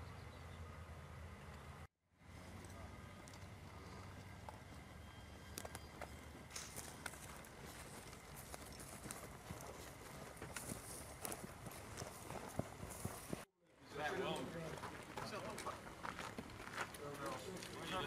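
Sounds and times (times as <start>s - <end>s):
steady low hum: 0.0s - 13.5s.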